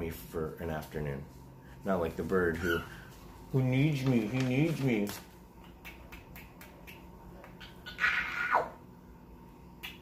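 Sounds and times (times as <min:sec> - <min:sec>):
cockatiel call: 0:07.6 - 0:08.8.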